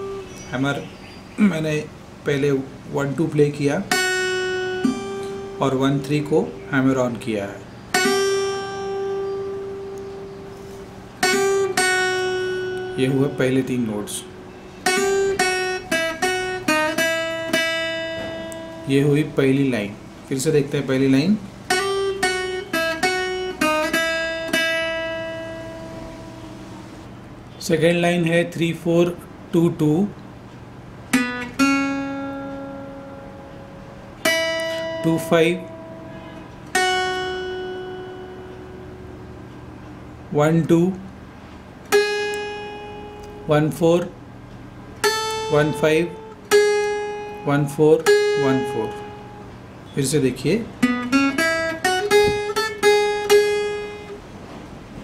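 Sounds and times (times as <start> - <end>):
acoustic guitar notes: 0.0 - 55.0.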